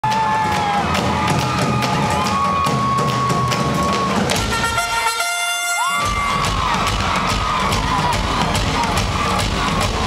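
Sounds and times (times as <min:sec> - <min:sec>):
crowd cheering and screaming: 0:00.0 - 0:10.0
marching drums beating: 0:00.0 - 0:10.0.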